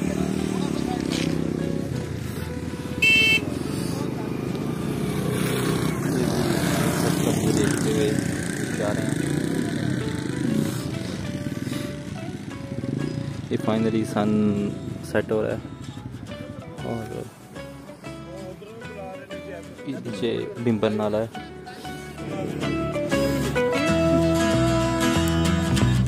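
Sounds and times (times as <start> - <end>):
motorcycle engines running: 0.0 - 18.6.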